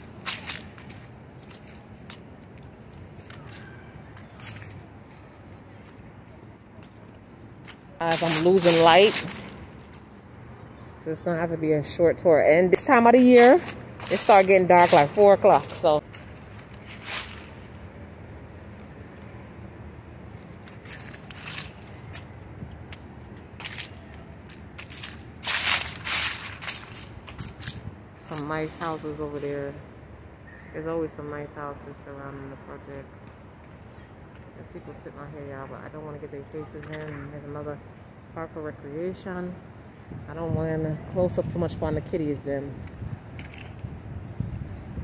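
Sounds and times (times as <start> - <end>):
footsteps crunching on dry leaves: 0.0 - 6.1, 7.6 - 10.2, 12.8 - 18.0, 20.2 - 28.5
low outdoor background noise: 0.0 - 45.0.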